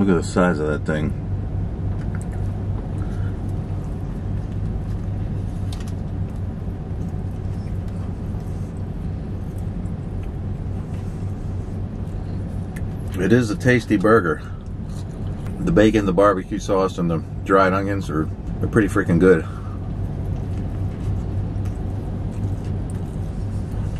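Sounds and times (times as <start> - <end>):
car engine idling: 0.0 - 23.9
faint chewing: 1.9 - 15.8, 19.4 - 23.9.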